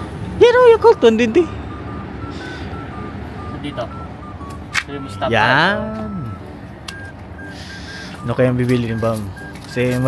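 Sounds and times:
vending machine electronic beeps: 0.0s - 10.0s.

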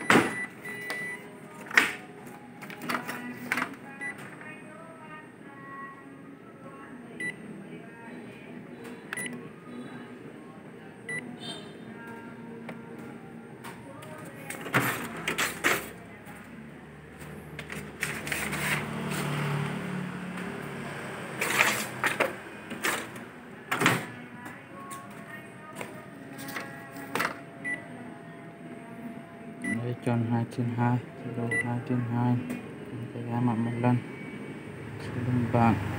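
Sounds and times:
copier humming: 7.0s - 35.9s.

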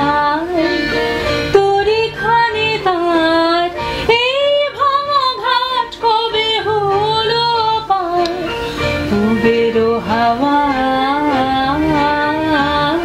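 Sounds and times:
woman singing slow melody: 0.0s - 13.0s.

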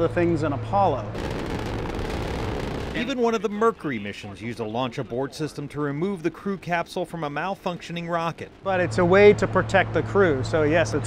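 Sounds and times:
rocket engine rushing noise: 1.2s - 3.2s.

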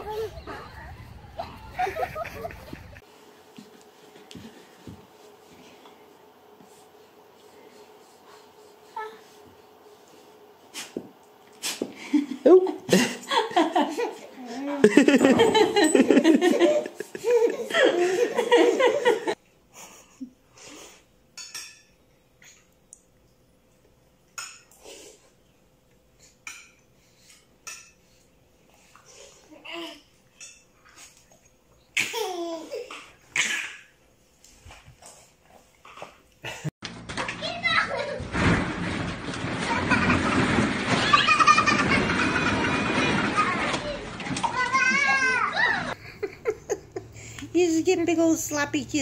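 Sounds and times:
children shrieking and laughing: 0.0s - 3.0s, 39.6s - 46.0s.

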